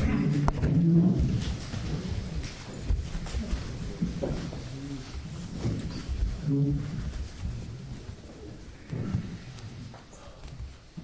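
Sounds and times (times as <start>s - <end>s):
low voice murmur: 0.0s - 11.0s
people shifting about: 0.0s - 11.0s.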